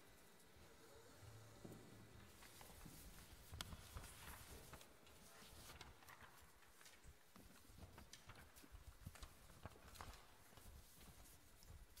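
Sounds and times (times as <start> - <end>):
faint clicks and taps: 1.6 - 12.0.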